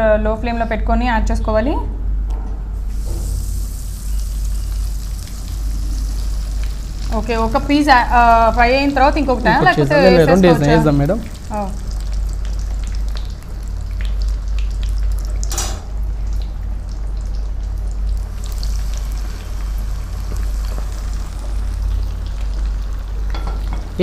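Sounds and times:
chicken sizzling in hot oil: 2.8 - 24.0.

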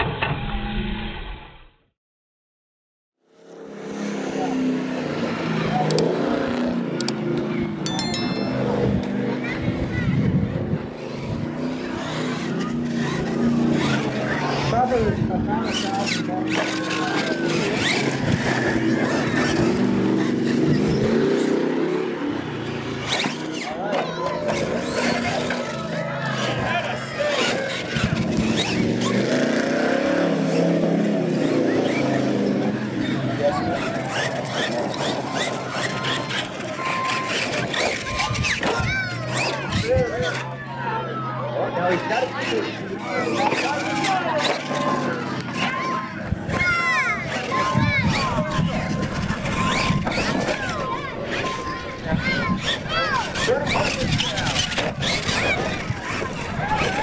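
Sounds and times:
spectators chattering: 4.0 - 57.0
toy truck motor revving: 11.0 - 40.6, 41.2 - 57.0.

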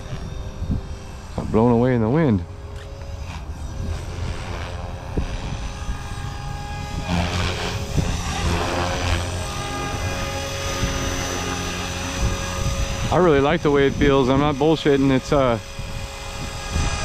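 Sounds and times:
rc helicopter rotor whine: 0.0 - 17.0
wind rumble on microphone: 0.0 - 17.0.

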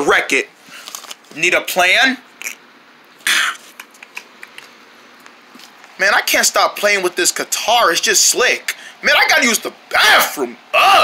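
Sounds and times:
low hiss: 0.0 - 11.0
paper rustling: 0.6 - 1.4.

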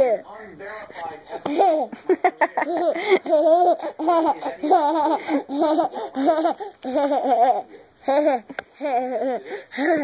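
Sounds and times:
toddler giggling: 1.5 - 10.0.

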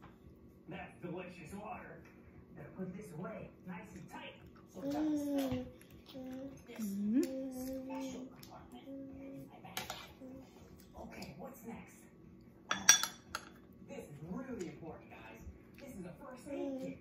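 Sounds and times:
spoon tapping and scraping plate: 12.7 - 13.6.

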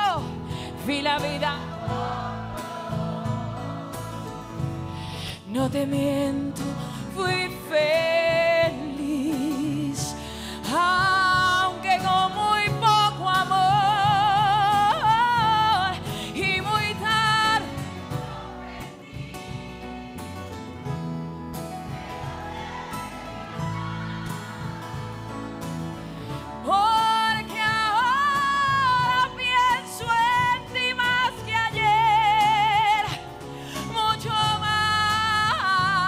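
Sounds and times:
woman singing: 0.0 - 2.8, 5.3 - 18.1, 26.6 - 36.0
band playing: 1.4 - 5.3, 17.1 - 29.6.

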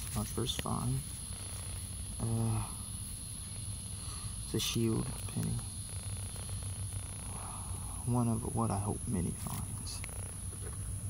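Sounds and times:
faint high-pitched whine: 0.0 - 11.0
low hum: 0.0 - 11.0.

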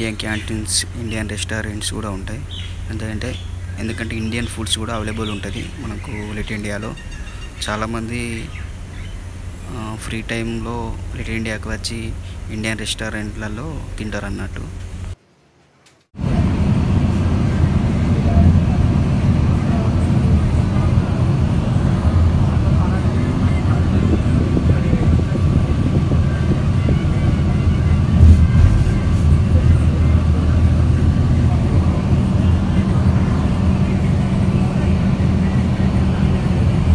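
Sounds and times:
vehicle engine and road rumble: 0.0 - 15.2, 16.2 - 36.9.

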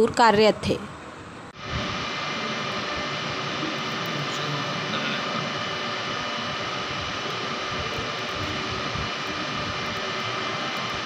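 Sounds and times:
faint steady whine tones: 0.0 - 11.0
passenger train rushing: 1.6 - 11.0.

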